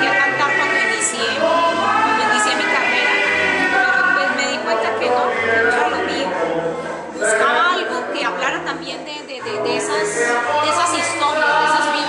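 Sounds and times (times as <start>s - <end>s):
woman singing: 0.0s - 6.4s, 7.2s - 12.0s.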